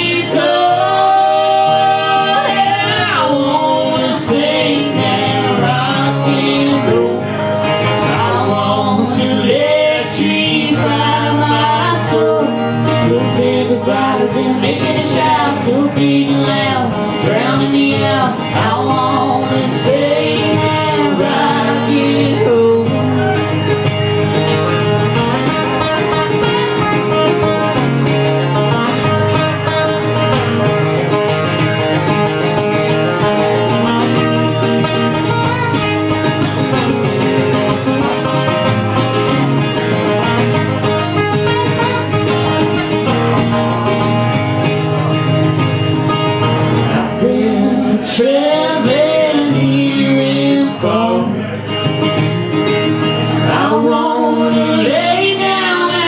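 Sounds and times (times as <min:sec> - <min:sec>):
man and woman singing: 0:00.0 - 0:23.6, 0:46.9 - 0:51.8, 0:53.2 - 0:56.0
acoustic guitars: 0:00.0 - 0:56.0.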